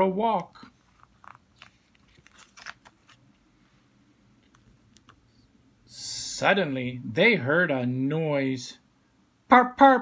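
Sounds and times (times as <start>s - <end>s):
book page turning: 0.6s - 3.4s.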